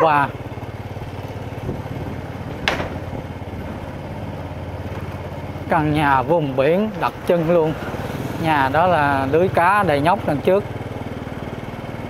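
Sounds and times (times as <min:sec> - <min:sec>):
small motorbike engine running: 0:00.0 - 0:12.0.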